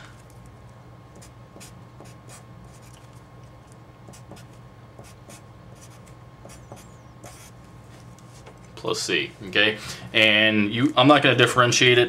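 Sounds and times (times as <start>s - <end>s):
faint steady hum: 0.0s - 12.0s
marker scratching on paper: 1.2s - 3.0s, 4.1s - 7.6s.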